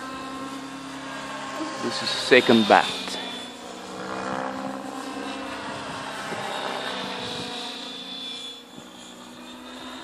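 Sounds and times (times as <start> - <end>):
helicopter rotor whine: 0.0 - 10.0.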